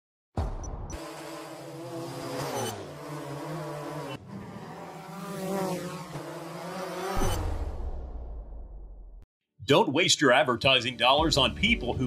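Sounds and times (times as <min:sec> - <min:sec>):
drone propellers whirring: 0:00.6 - 0:08.8.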